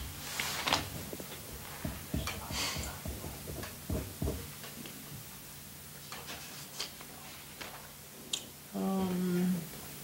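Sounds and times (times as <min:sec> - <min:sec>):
low room hum: 0:00.0 - 0:10.0
papers rustling: 0:00.2 - 0:01.7.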